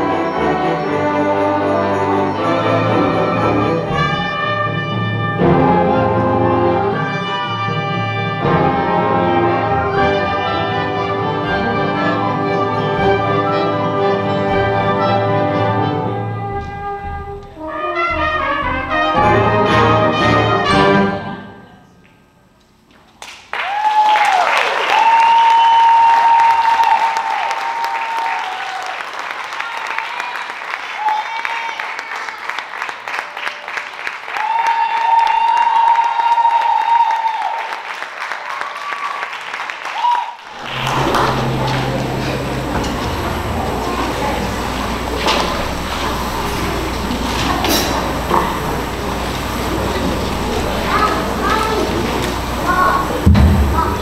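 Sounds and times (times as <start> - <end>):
brass band chords: 0.0 - 21.7, 40.5 - 54.0
low hum with stage noise: 2.9 - 29.6, 40.4 - 54.0
audience applause: 23.2 - 54.0.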